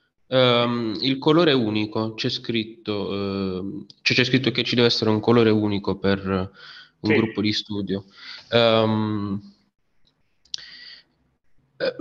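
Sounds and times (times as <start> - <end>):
person speaking: 7.0 - 7.7.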